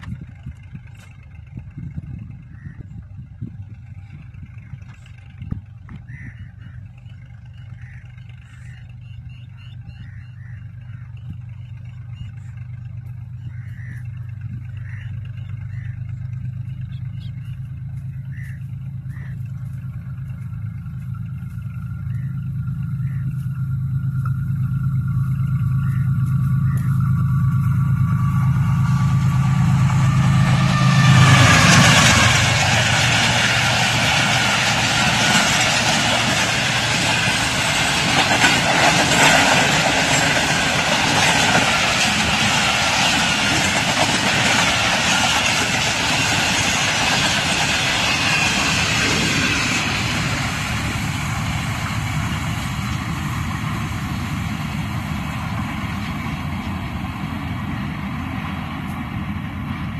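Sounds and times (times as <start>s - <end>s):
locomotive engine drone: 0.0s - 59.9s
wheels rumbling on rails: 0.0s - 59.9s.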